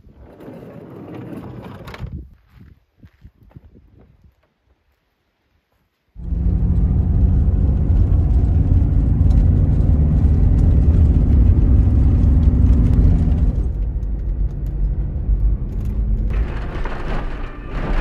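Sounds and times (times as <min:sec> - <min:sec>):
engine and tyres rumbling: 0:06.2 - 0:18.0.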